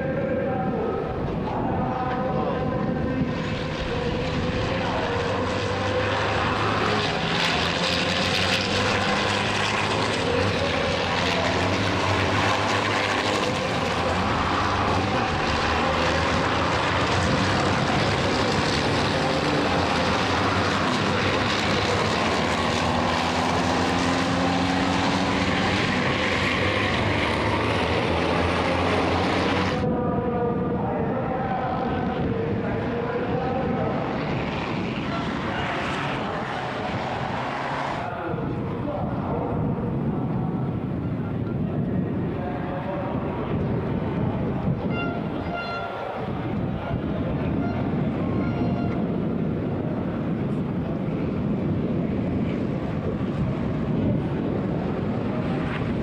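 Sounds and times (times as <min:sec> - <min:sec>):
truck engines racing: 0:00.0 - 0:56.0.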